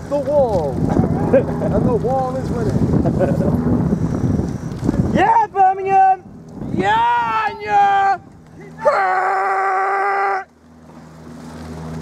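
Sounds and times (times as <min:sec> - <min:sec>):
person yelling encouragement: 0:05.2 - 0:10.5.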